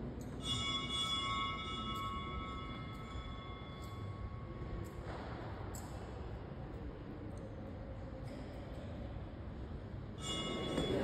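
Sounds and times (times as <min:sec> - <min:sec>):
altar bell ringing: 0:00.2 - 0:04.9, 0:10.1 - 0:11.0.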